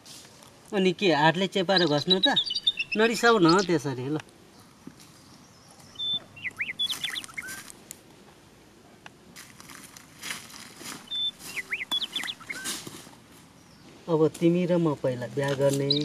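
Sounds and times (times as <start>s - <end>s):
bird chirping: 0.8s - 7.8s, 10.9s - 16.0s
rustling: 9.4s - 16.0s.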